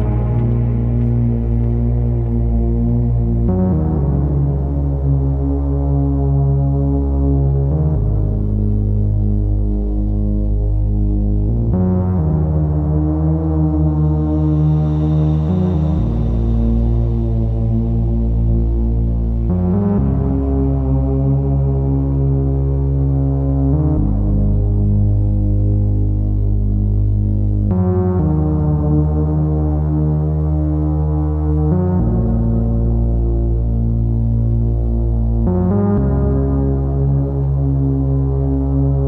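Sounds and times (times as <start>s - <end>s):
flickering deep bass note: 0.0s - 5.7s, 7.6s - 27.6s
ambient synthesizer chord: 0.0s - 39.0s.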